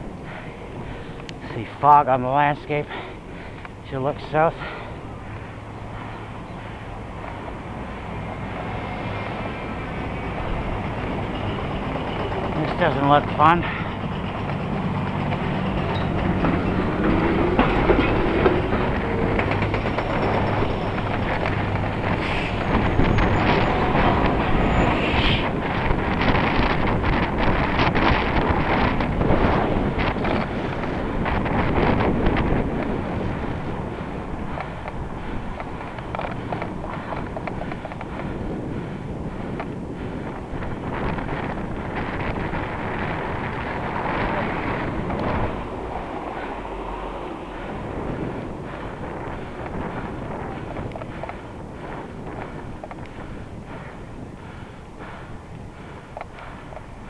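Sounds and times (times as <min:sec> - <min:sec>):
heavy vehicle engine hum: 0:00.0 - 0:57.0
road and wind noise: 0:00.0 - 0:57.0.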